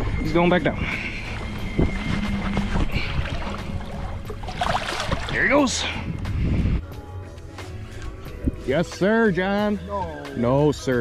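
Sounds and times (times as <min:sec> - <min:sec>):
wind rumble on microphone: 0:00.0 - 0:07.0, 0:08.2 - 0:08.8
water lapping against boat: 0:00.6 - 0:06.6.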